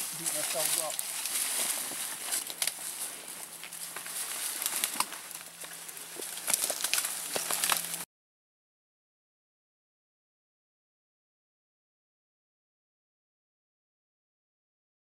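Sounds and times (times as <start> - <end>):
carcass dragged across forest floor: 0.0 - 8.0
dry leaves rustling: 0.0 - 8.0
footsteps: 0.0 - 8.0
twigs crackling: 0.0 - 8.1.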